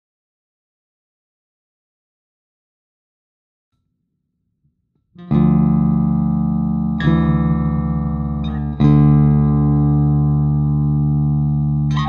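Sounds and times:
electric guitar chord over bass: 5.2 - 12.0.

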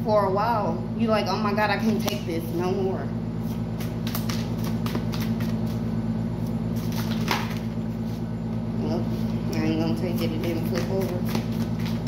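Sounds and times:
steady low hum: 0.0 - 12.0
cards being shuffled: 3.4 - 5.8, 6.8 - 8.2, 10.0 - 12.0.

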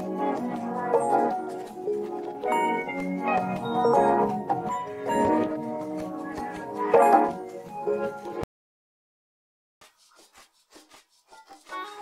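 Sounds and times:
soft short strokes: 9.8 - 11.8.

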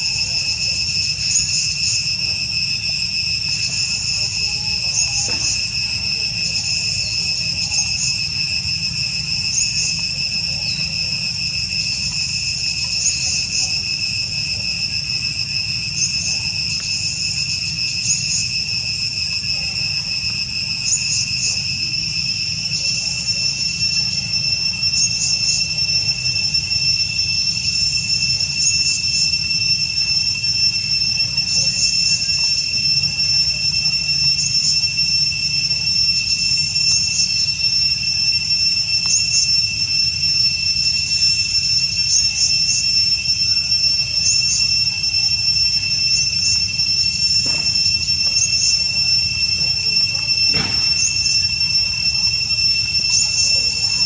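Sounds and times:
insect chirps: 0.0 - 54.0
insects high-pitched drone: 0.0 - 54.0.

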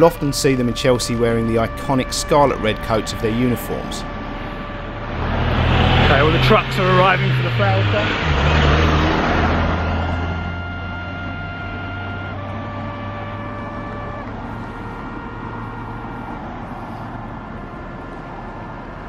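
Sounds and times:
cars passing: 0.0 - 19.0
lorry engine running: 0.0 - 19.0.

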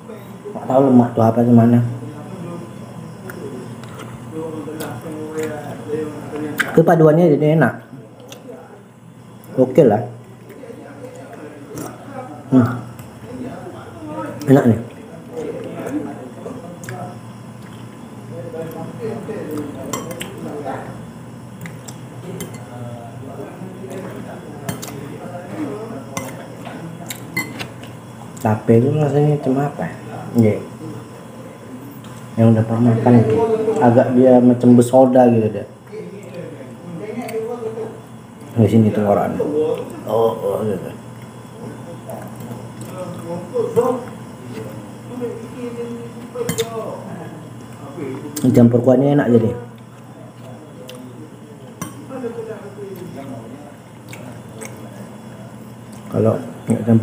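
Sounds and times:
spoon clinking on a plate: 27.4 - 27.7.

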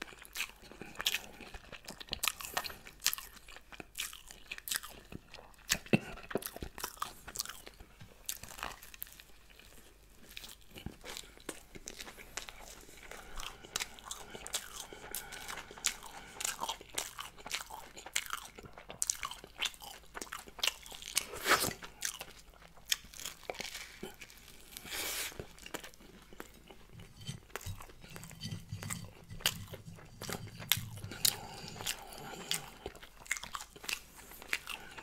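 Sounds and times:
crunching and chewing toast: 0.0 - 35.0.

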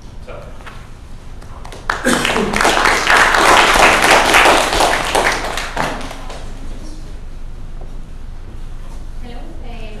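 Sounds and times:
audience applauding: 1.6 - 6.6.

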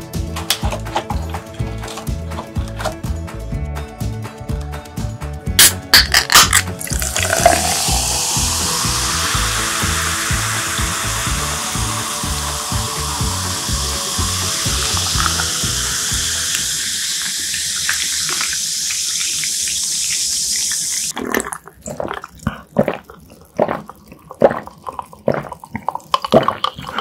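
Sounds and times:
background music with steady beat: 0.0 - 17.2
can clicking open: 5.6 - 19.5
soda pouring and fizzing: 5.6 - 27.0.

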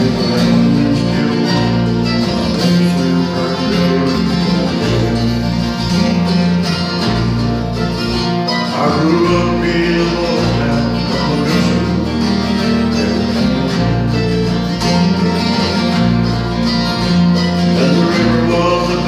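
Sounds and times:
acoustic guitars playing country: 0.0 - 19.0.

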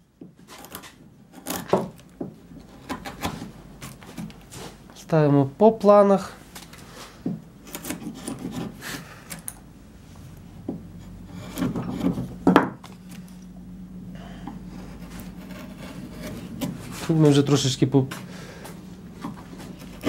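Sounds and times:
carving gouge scraping wood: 0.4 - 4.7, 7.6 - 9.5, 10.8 - 13.3, 14.5 - 17.6, 19.1 - 20.0.

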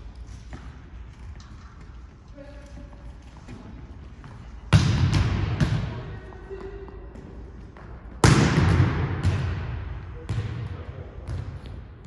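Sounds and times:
volleyball bouncing on wooden floor: 3.5 - 12.0
echo of ball hit: 8.2 - 11.4.

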